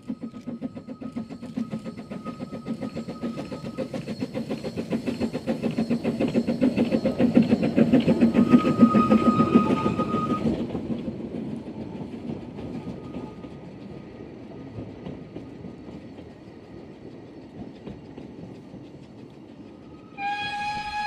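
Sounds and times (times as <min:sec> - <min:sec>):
thin steady high tone: 0:00.0 - 0:10.3
railway coaches rolling: 0:00.0 - 0:21.0
steam locomotive exhaust beats: 0:00.0 - 0:21.0.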